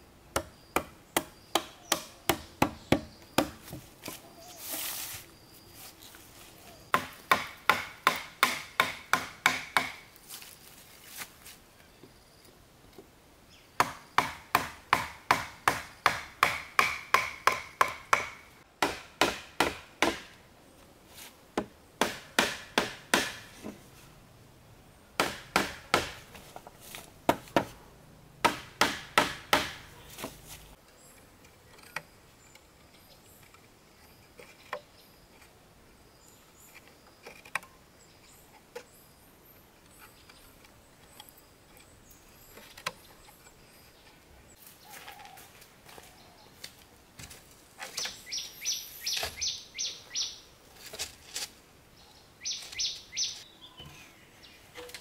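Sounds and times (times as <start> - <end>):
hollow bamboo poles knocked: 0.4 - 4.2, 6.9 - 10.1, 13.8 - 20.4, 21.6 - 23.8, 25.2 - 27.8, 28.4 - 30.4.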